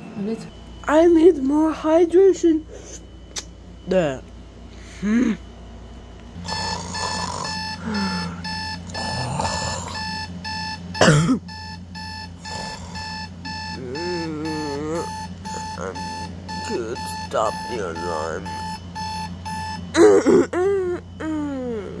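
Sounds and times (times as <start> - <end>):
alarm clock beeping: 6.4 - 20.1.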